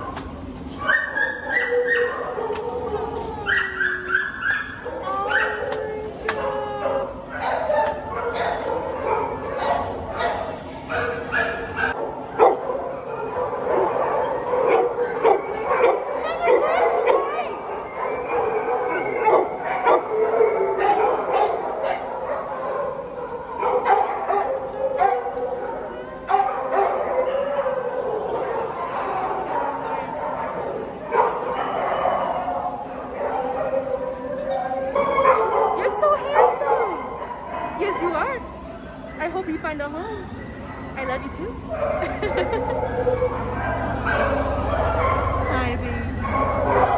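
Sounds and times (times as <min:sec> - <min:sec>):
dogs barking and yipping: 0:00.0 - 0:46.9
murmur of voices: 0:04.9 - 0:20.0.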